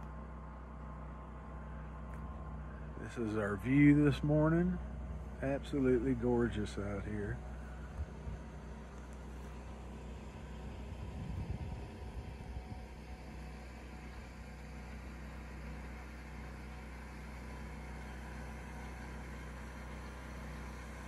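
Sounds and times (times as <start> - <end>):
low mechanical hum: 0.0 - 21.0.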